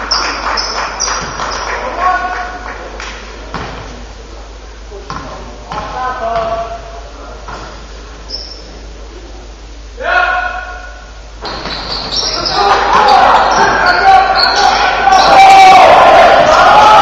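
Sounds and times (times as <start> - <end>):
shoes squeaking on hardwood floor: 11.4 - 15.3
voices calling out: 11.4 - 17.0.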